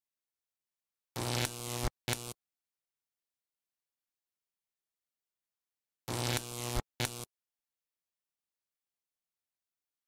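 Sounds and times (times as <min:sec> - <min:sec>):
glitchy static bursts: 0:01.2 - 0:02.4, 0:06.1 - 0:07.3
low buzzing tone: 0:01.2 - 0:02.4, 0:06.1 - 0:07.3.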